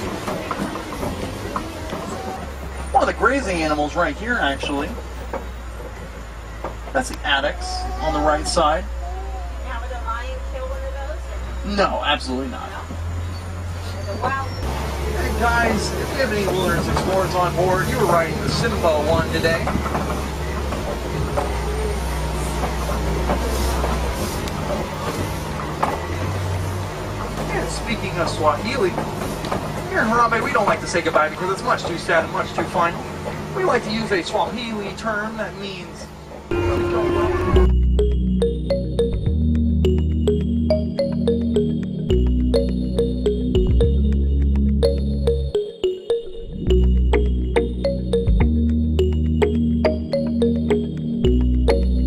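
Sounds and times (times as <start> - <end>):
road noise: 0.0 - 52.0
truck engine rumbling: 0.0 - 52.0.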